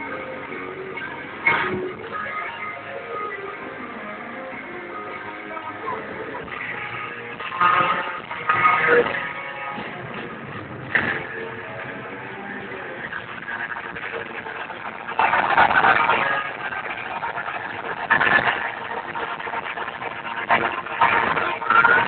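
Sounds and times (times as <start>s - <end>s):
crowd and amplified rock band: 0.0s - 22.0s.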